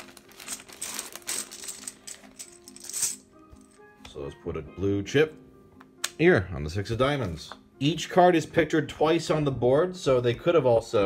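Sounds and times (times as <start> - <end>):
soft background music: 0.0 - 11.0
plastic game chips clattering: 0.3 - 3.2.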